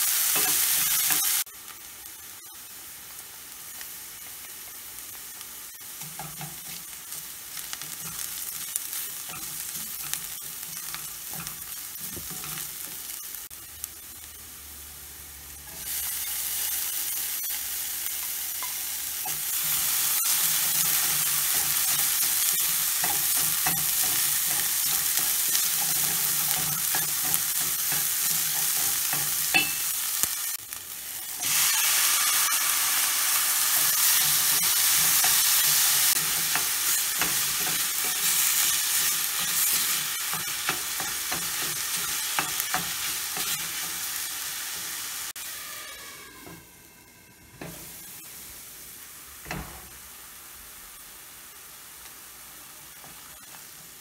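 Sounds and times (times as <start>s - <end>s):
vegetables sizzling in hot oil: 0.0s - 54.0s.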